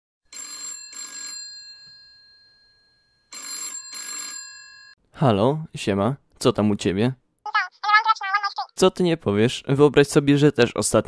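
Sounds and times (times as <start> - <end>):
telephone bell ringing: 0.3 - 5.0.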